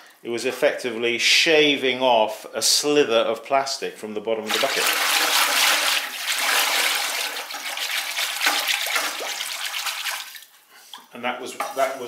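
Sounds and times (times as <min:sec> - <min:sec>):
whisk swishing liquid in bucket: 0:04.5 - 0:10.4.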